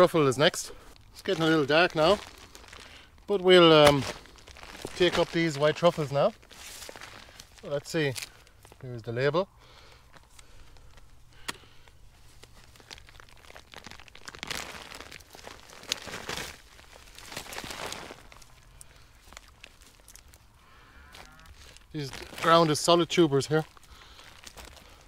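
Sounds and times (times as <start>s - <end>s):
hands rustling dry stalks: 0.0s - 25.0s
roots tearing out of soil: 0.9s - 8.9s, 10.0s - 25.0s
stalks snapping: 10.2s - 11.7s.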